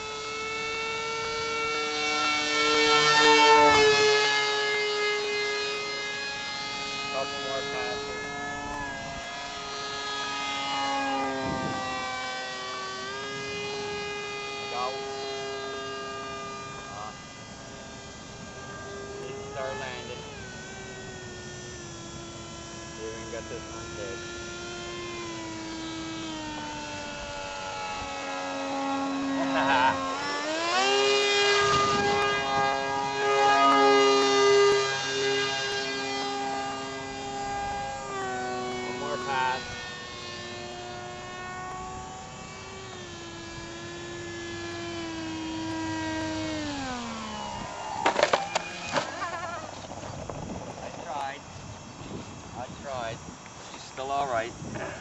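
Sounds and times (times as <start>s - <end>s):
model aircraft motor whining: 0.0s - 55.0s.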